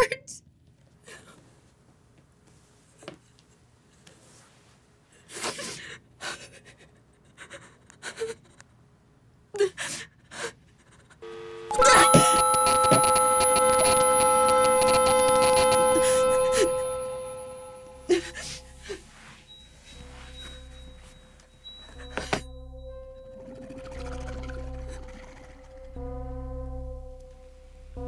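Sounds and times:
loud ringing screech: 11.7 - 18.7.

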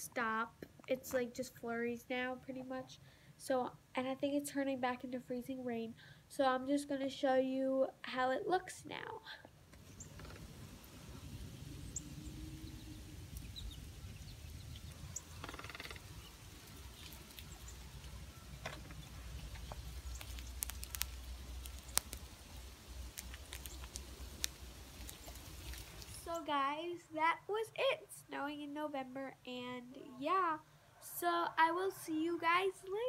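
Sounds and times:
low rumble: 9.8 - 26.3.

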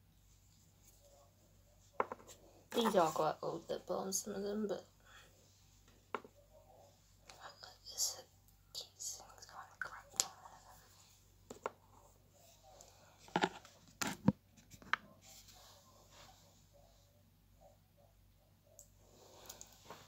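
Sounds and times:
soft whispering: 0.3 - 13.7, 15.0 - 20.0.

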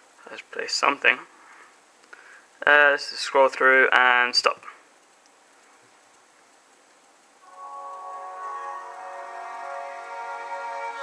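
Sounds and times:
music from phone loudspeaker: 7.4 - 11.0.

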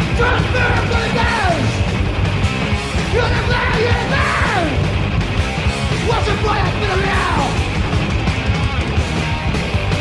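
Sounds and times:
hoarse yelled vocal: 0.0 - 1.8, 3.0 - 4.8, 5.9 - 7.6
bass guitar: 0.0 - 10.0
distorted electric guitar: 0.0 - 10.0
drums: 0.0 - 10.0.

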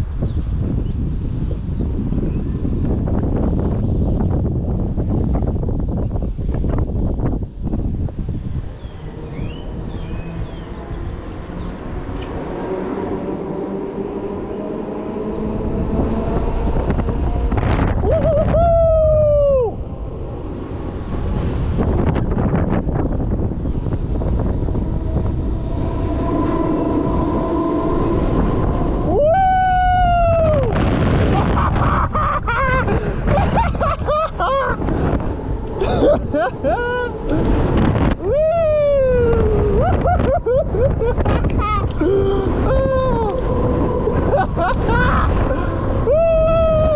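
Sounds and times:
wind rushing over microphone: 0.0 - 46.9
steady hum: 5.4 - 46.9
riders whooping: 8.6 - 46.9.

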